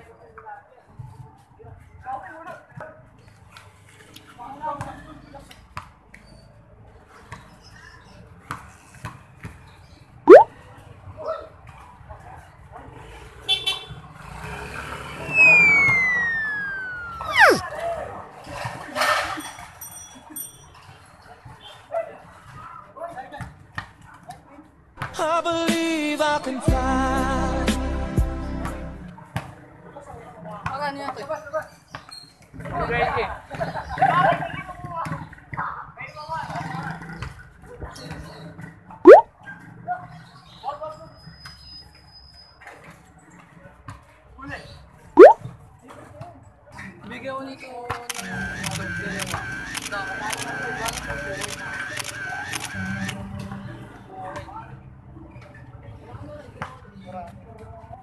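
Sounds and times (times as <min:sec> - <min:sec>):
street game noise: 0:00.0 - 0:58.0
cartoon whistle effects: 0:10.3 - 0:10.5, 0:15.3 - 0:17.6
people talking and shouting: 0:15.1 - 0:18.4, 0:45.2 - 0:58.0
loud upward-sweeping squeal: 0:15.2 - 0:17.6
scattered voices: 0:48.1 - 0:53.6.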